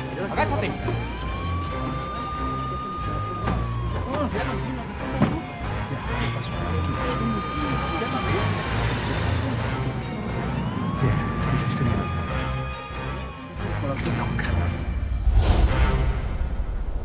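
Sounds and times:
police siren wailing: 0.0s - 13.8s.

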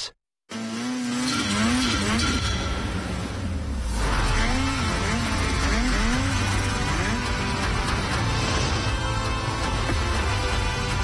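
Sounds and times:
snowmobile engine revving: 0.5s - 8.4s
music with heavy bass: 4.0s - 11.0s.

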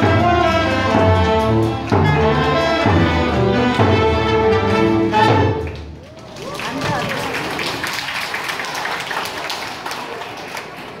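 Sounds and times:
audience applause: 5.6s - 11.0s.

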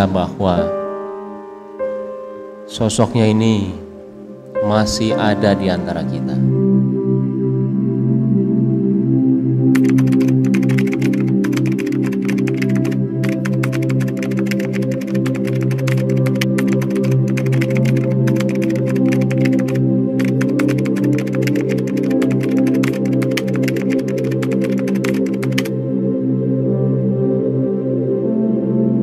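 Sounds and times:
ambient synthesizer pad music: 0.0s - 29.0s
keyboard typing clicks: 9.8s - 25.7s.

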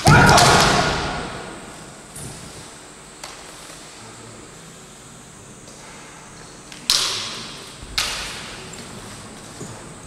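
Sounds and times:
bamboo swords striking: 0.0s - 2.0s.

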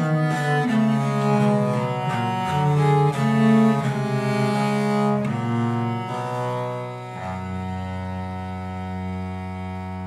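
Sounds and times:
bowed viols playing duet: 0.0s - 10.0s.

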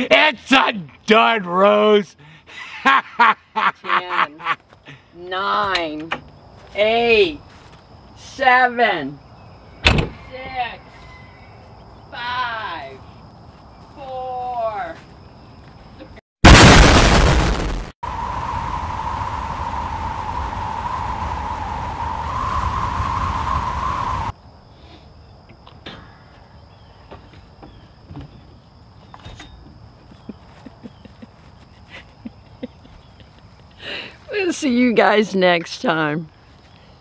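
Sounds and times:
loud explosion: 16.4s - 20.6s.

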